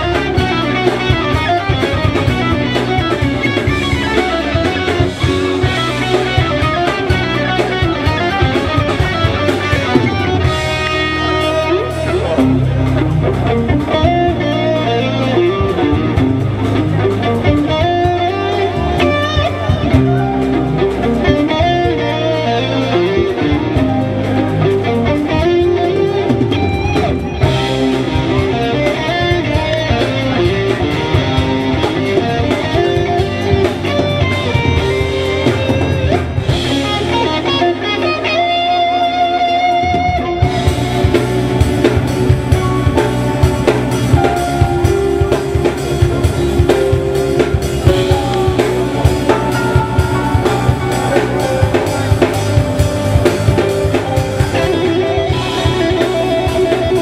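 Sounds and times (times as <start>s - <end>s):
bass guitar: 0.0s - 57.0s
drum kit: 0.0s - 57.0s
electric guitar: 0.0s - 57.0s
keyboards: 0.0s - 57.0s.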